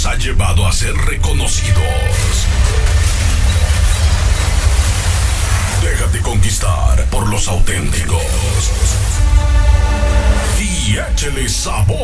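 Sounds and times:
loud low rumble: 1.2 - 12.0
even hiss: 4.0 - 11.5.

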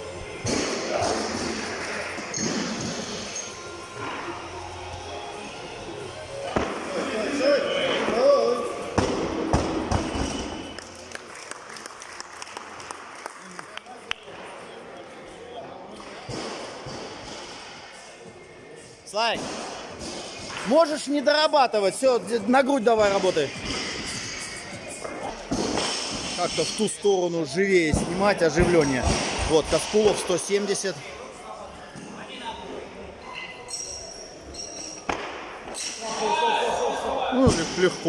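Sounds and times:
background music: 0.0 - 12.4.

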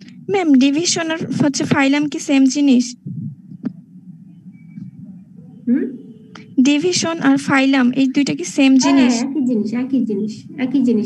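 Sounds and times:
low steady hum: 0.0 - 11.0
woman speaking: 0.3 - 3.0, 5.7 - 11.0.

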